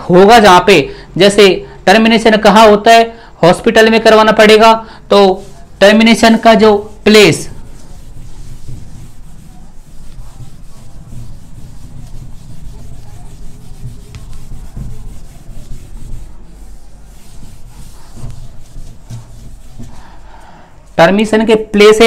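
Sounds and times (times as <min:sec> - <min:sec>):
eraser rubbing on whiteboard: 0:05.2 - 0:20.3.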